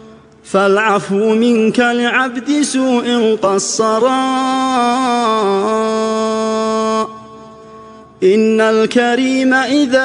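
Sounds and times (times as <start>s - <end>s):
solo chanting voice: 0.0s - 10.0s.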